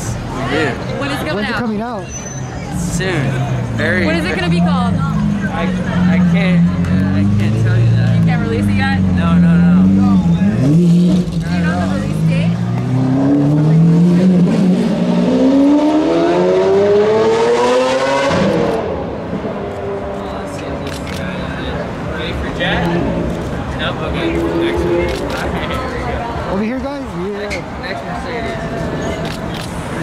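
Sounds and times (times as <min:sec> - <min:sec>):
car engine accelerating: 0:03.0 - 0:25.6
scattered voices: 0:19.8 - 0:30.0.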